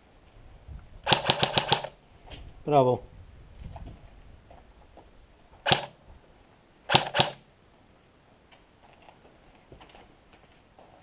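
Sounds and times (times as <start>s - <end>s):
airsoft gun shots: 1.1s - 2.0s, 5.6s - 6.0s, 6.9s - 7.5s.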